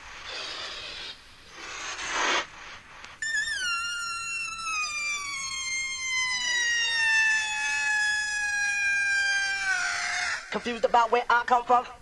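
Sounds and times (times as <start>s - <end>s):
siren-like electronic tone: 3.2s - 10.8s.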